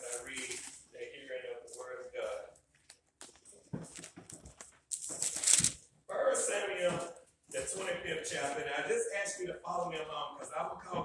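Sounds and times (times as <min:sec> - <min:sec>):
clothes rustling: 0:00.0 - 0:05.8.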